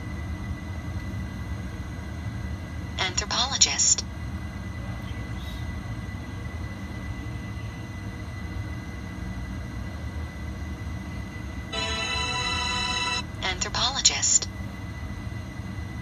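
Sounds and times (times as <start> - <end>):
low background rumble: 0.0 - 16.0
sustained electronic chord tone: 11.7 - 13.3.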